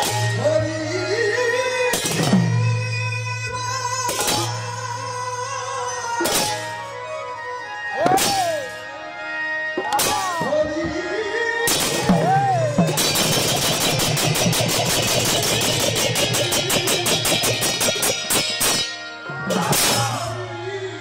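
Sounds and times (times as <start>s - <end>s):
drums: 0.0s - 5.3s, 6.1s - 6.9s, 8.0s - 8.9s, 9.8s - 20.4s
hand cymbals clashing: 13.0s - 19.0s.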